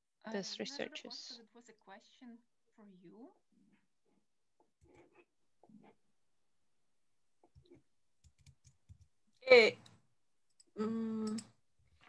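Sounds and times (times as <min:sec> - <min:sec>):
person humming: 0:10.8 - 0:11.5.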